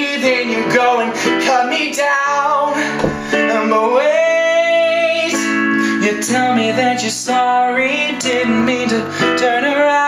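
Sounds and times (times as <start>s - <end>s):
digital piano chords: 0.0s - 10.0s.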